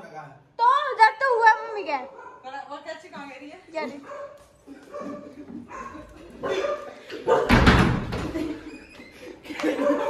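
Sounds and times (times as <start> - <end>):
dog barking: 2.0 - 2.6, 4.0 - 7.6, 9.8 - 10.0.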